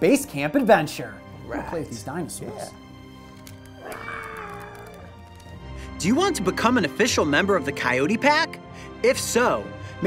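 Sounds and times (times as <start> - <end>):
background music: 0.0 - 10.0
toy dinosaur roar: 3.8 - 5.1.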